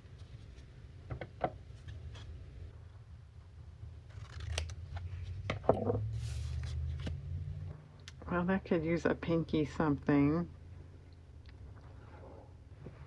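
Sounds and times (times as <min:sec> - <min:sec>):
scissors snipping paper: 0:04.1 - 0:04.8.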